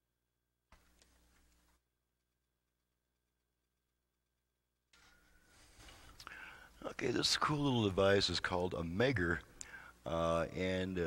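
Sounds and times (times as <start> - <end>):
faint breathy hiss: 5.0 - 7.0, 9.4 - 10.2.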